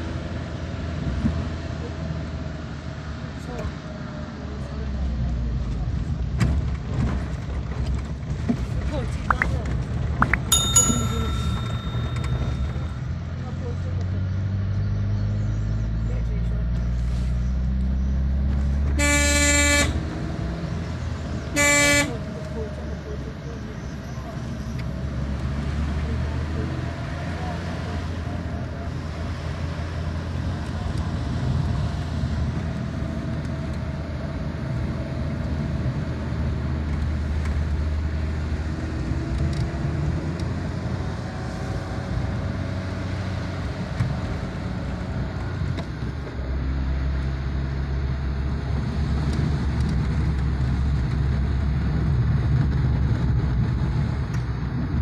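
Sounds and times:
car engine: 0.0s - 55.0s
road noise: 0.0s - 55.0s
car horn honking: 19.0s - 20.0s, 21.5s - 22.3s.

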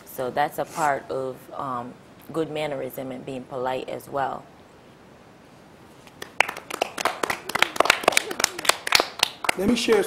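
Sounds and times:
group of people clapping: 6.2s - 10.0s.

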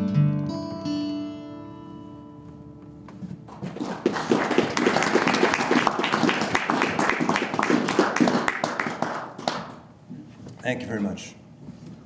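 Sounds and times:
small audience clapping: 3.4s - 9.9s.

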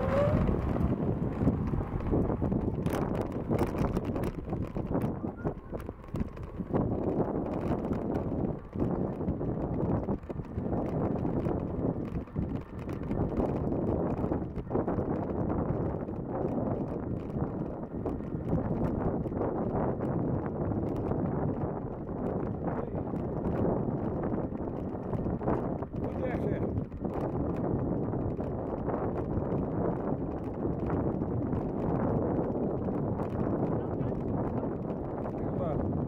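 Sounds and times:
bicycle tyres rolling: 0.0s - 36.0s
bike rattles and clicks: 0.0s - 36.0s
wind buffeting microphone: 0.0s - 36.0s.

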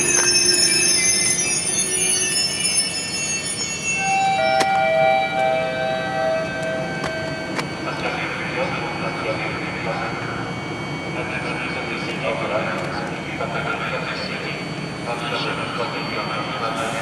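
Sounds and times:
two-note tone: 0.0s - 8.8s
train wheel and brake squeal: 0.0s - 17.0s.

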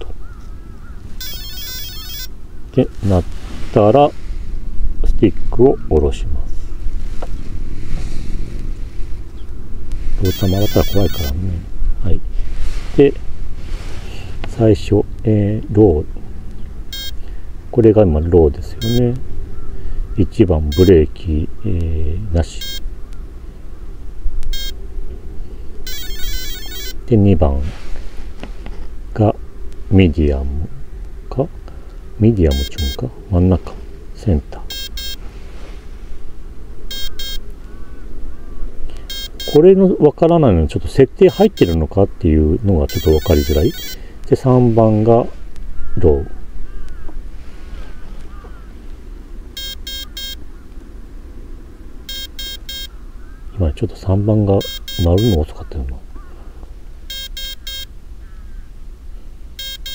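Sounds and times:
electronic beeps through motor: 1.2s - 2.3s, 10.2s - 11.4s, 16.9s - 17.2s, 18.8s - 19.1s, 20.7s - 21.0s, 22.6s - 22.8s, 24.5s - 24.8s, 25.9s - 27.0s, 32.5s - 33.0s, 34.7s - 35.2s, 36.9s - 37.4s, 39.1s - 39.6s, 41.3s - 41.8s, 42.9s - 44.0s, 49.6s - 50.4s, 52.1s - 52.9s, 54.6s - 55.5s, 57.1s - 57.9s, 59.6s - 59.9s
steady low rumble: 2.3s - 26.2s, 26.9s - 43.0s, 43.9s - 55.2s.

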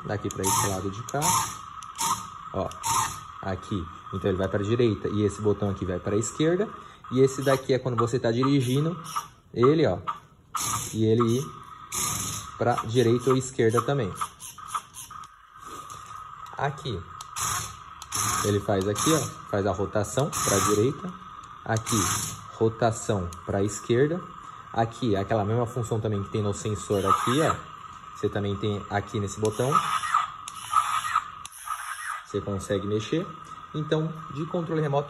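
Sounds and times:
toy car motors whirring: 0.0s - 35.0s
toy car clicks: 0.3s - 3.2s, 13.7s - 15.4s, 29.4s - 32.2s.

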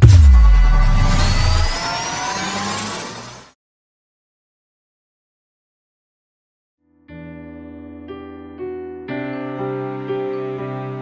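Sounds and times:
electronic tones gliding upward: 0.5s - 3.5s.

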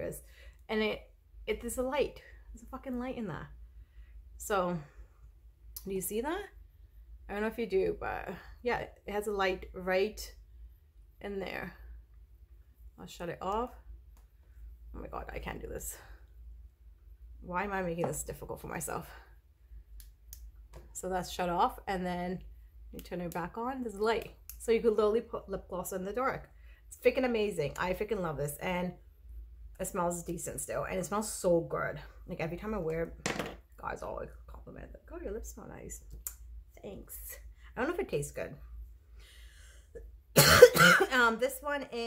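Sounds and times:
woman coughing: 40.4s - 41.3s.

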